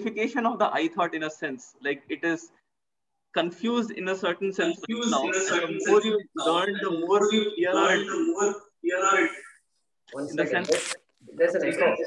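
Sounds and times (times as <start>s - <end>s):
man speaking: 3.4s - 12.0s.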